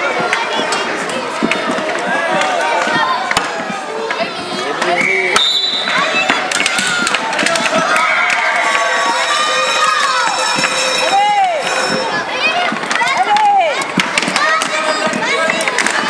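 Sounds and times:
plastic hockey sticks clicking: 0.0s - 11.3s, 12.6s - 16.0s
skate wheels on sports floor: 0.0s - 16.0s
children shouting in echoing hall: 5.8s - 16.0s.

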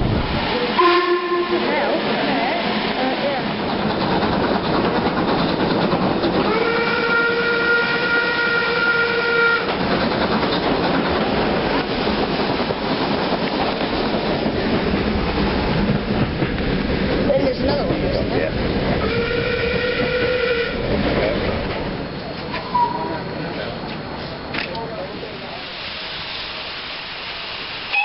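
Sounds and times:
train running and rail clatter: 0.0s - 28.0s
steam locomotive whistle: 0.7s - 1.9s, 6.4s - 9.7s, 19.0s - 20.9s, 22.5s - 23.2s, 27.8s - 28.0s.

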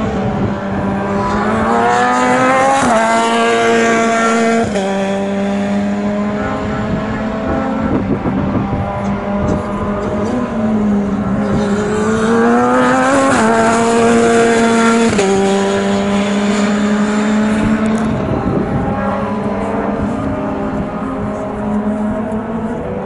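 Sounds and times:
racing car engine accelerating: 0.0s - 23.0s.

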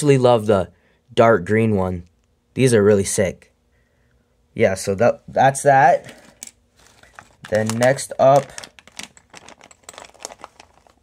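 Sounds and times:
plastic bag crinkling: 6.0s - 11.0s.

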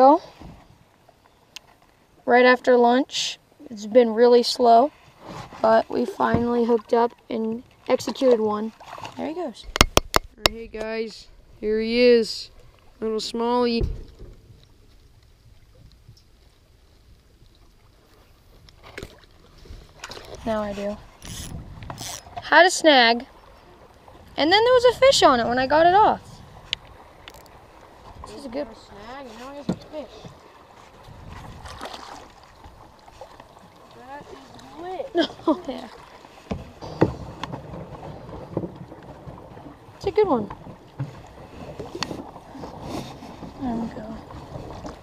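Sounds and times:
faint water sounds: 0.0s - 45.0s
wind rumbling on microphone: 18.4s - 32.9s.

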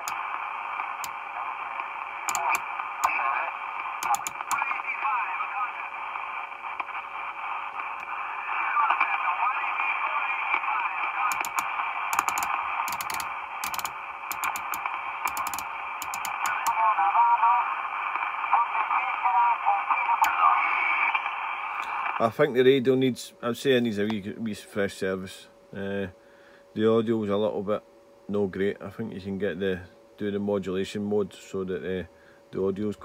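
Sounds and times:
sharp clicks: 0.0s - 0.2s, 2.3s - 3.2s, 4.0s - 4.6s, 11.3s - 16.8s
radio static hiss: 0.0s - 33.0s
garbled radio voices: 0.2s - 13.4s, 16.1s - 22.2s.

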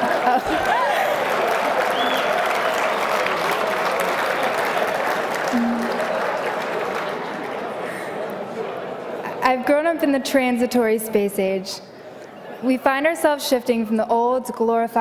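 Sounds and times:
audience applauding: 0.0s - 8.8s.

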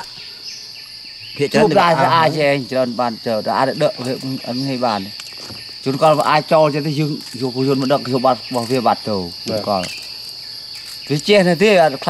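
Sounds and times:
high-pitched insect chorus: 0.0s - 12.0s
man talking: 1.4s - 5.1s, 5.9s - 10.0s, 11.1s - 12.0s.

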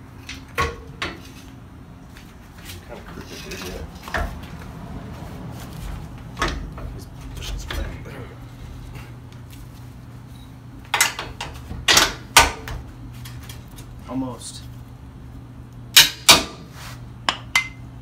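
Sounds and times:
low steady hum: 0.0s - 18.0s
metal clanks and knocks: 0.3s - 1.4s, 6.4s - 8.0s, 10.9s - 12.7s.

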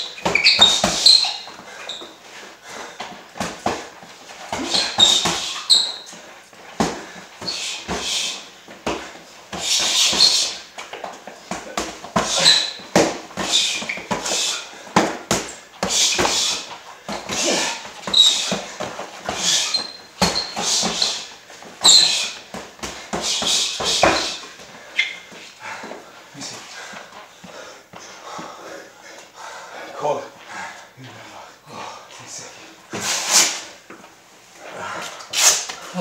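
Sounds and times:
boxing gloves smacking: 3.0s - 6.2s, 6.8s - 24.7s
sharp hissing breaths: 7.1s - 8.5s, 9.1s - 10.6s, 13.4s - 15.0s, 15.8s - 25.8s.

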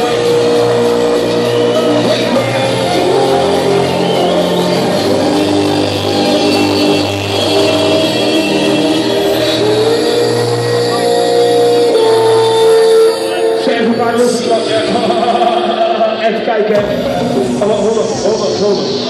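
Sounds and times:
electronic dance music: 0.0s - 19.0s.

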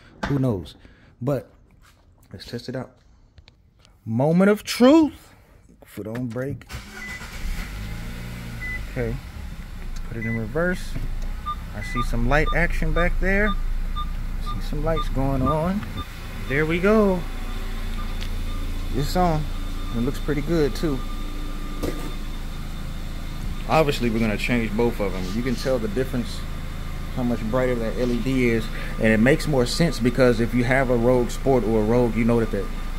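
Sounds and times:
car engine starting and idling: 6.7s - 32.9s
short high beeps: 11.4s - 22.4s.

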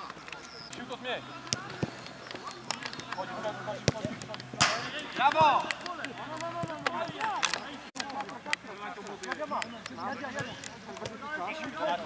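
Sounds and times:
players shouting: 0.8s - 7.9s
football being kicked: 1.5s - 2.0s, 3.7s - 5.7s.

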